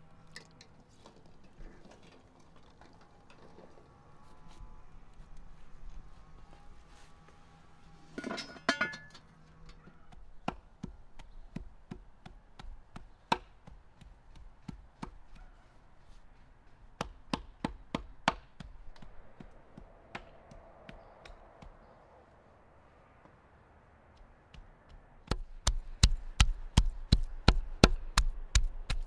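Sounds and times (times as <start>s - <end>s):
cleaver chopping meat on wood: 10.1s - 15.5s, 17.0s - 21.8s, 24.5s - 29.0s.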